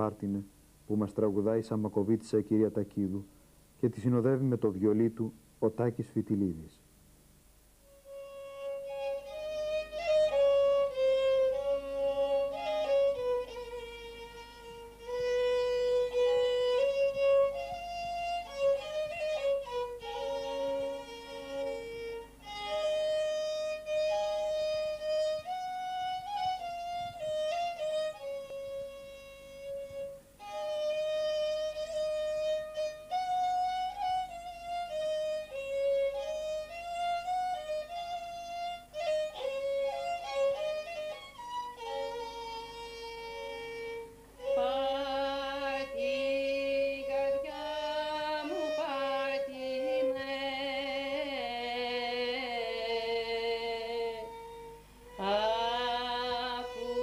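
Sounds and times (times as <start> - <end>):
solo violin folk melody: 0.0 - 6.7, 7.8 - 57.0.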